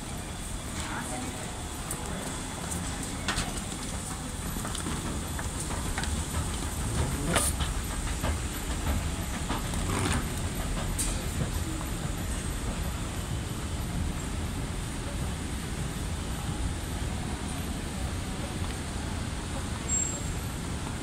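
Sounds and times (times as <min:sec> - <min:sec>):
moving walkway rumbling: 0:00.0 - 0:21.0.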